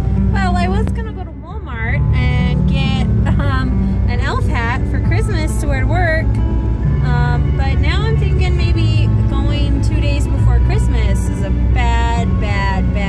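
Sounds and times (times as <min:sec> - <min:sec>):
car rumble inside cabin: 0:00.0 - 0:13.0.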